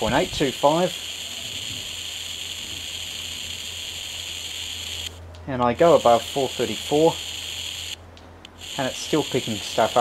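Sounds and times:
radio receiver hiss: 0:00.0 - 0:05.2, 0:05.8 - 0:10.0.

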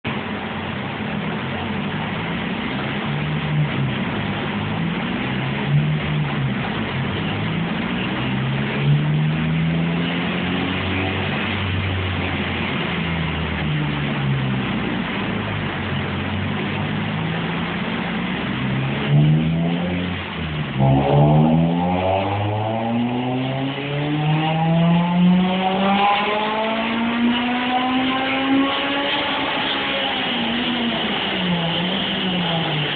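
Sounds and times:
car engine revving: 0:00.0 - 0:32.9
loud steady rushing noise: 0:00.0 - 0:32.9.

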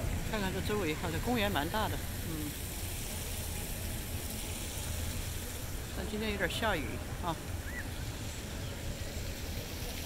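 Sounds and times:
low city rumble: 0:00.0 - 0:10.0
rain hiss: 0:00.0 - 0:10.0.

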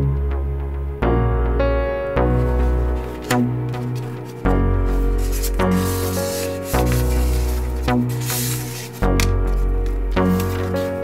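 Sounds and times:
background music with held chords: 0:00.0 - 0:11.0
cardboard sliding and rubbing: 0:02.2 - 0:11.0.

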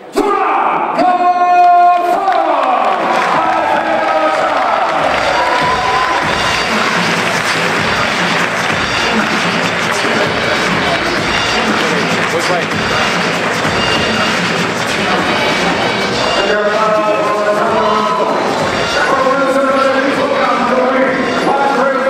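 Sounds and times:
crowd cheering and applauding: 0:01.6 - 0:21.6
loud music: 0:03.0 - 0:22.0.

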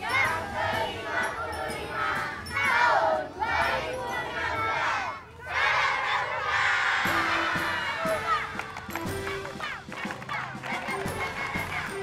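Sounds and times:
children shouting and cheering: 0:00.0 - 0:12.0
music: 0:00.0 - 0:12.0.

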